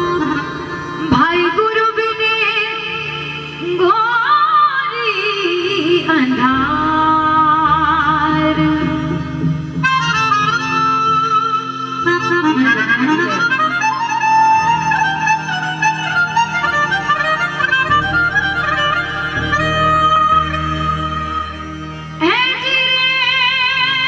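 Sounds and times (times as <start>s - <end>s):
keyboard synthesizer melody: 6.4s - 24.0s.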